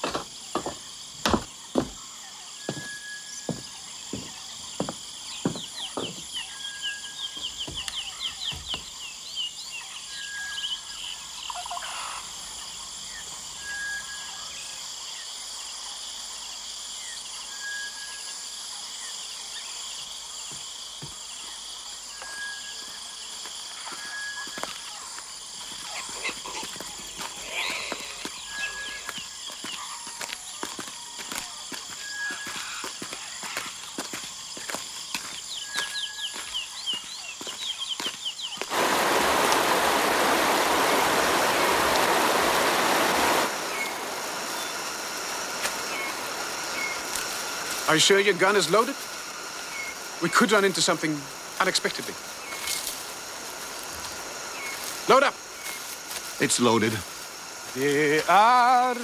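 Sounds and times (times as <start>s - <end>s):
insects chorus: 0.0s - 59.0s
bird twittering chirps: 1.7s - 15.8s, 21.3s - 38.7s, 43.6s - 53.4s.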